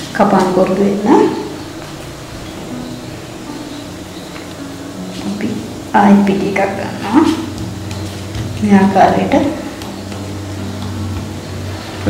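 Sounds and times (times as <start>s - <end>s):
low background hum with hiss: 0.0s - 12.0s.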